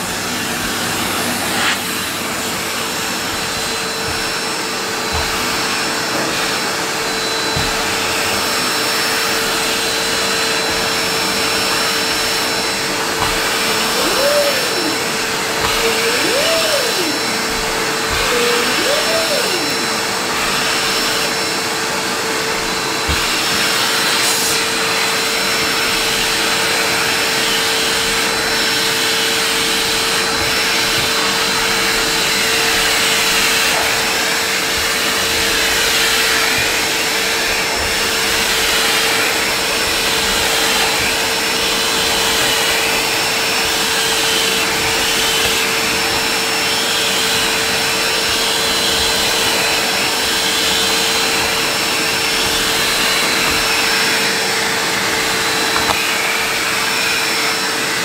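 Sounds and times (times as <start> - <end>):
vacuum cleaner running on carpet: 0.0 - 58.0.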